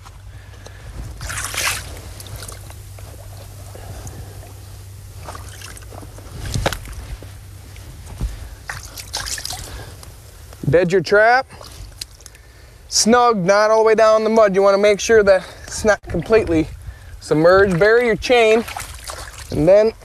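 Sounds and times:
steady low hum: 0:00.0 - 0:20.0
creek water sloshing and splashing: 0:01.1 - 0:10.4, 0:11.2 - 0:12.6, 0:17.3 - 0:20.0.

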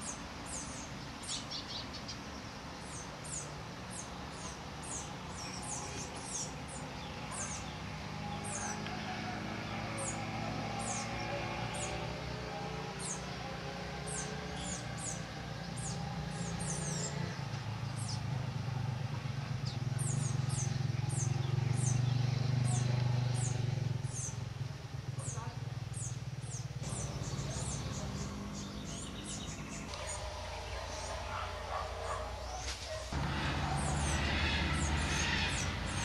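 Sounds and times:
small birds calling: 0:00.0 - 0:36.0.

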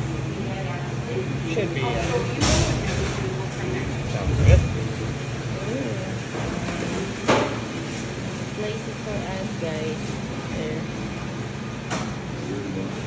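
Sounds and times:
machine hum: 0:03.1 - 0:07.1.

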